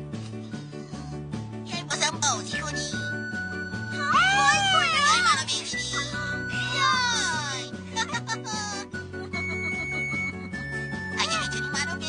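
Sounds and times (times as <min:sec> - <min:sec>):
cartoon background music with bass line: 0:00.0 - 0:12.0.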